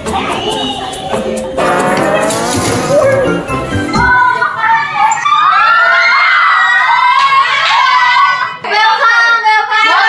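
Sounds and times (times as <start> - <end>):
young women squealing and screaming: 4.3 - 8.6.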